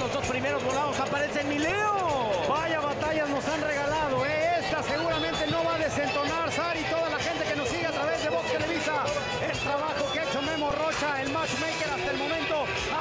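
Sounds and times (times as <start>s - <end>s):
faint music: 0.0s - 13.0s
man commentating: 0.0s - 13.0s.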